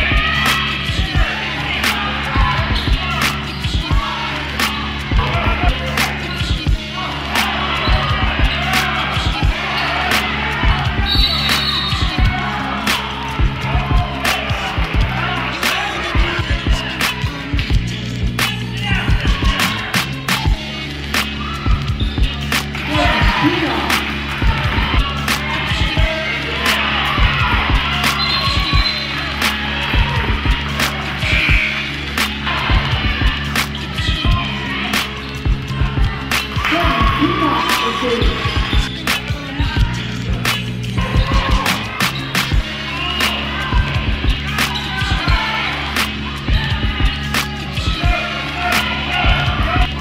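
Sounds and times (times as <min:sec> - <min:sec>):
crowd and player chatter: 0:00.0 - 0:50.0
music with steady beat: 0:00.0 - 0:50.0.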